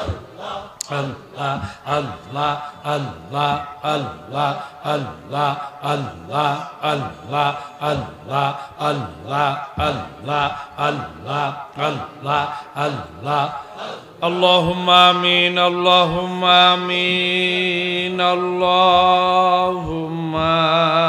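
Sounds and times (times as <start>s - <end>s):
men chanting in rhythm: 0.0s - 21.0s.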